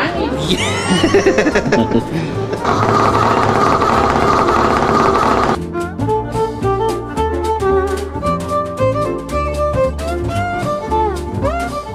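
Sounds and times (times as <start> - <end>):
background music: 0.0 - 4.9, 5.5 - 11.9
person laughing: 0.4 - 2.7
massage chair motor buzzing: 2.6 - 5.6.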